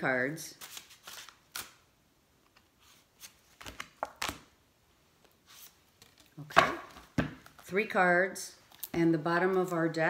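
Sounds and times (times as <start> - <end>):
cards being shuffled: 0.6 - 1.8, 2.4 - 4.5, 5.2 - 7.7.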